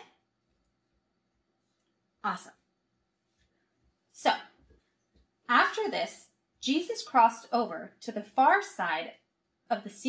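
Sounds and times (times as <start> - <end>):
woman speaking: 2.2 - 2.6, 4.1 - 4.6, 5.5 - 10.0.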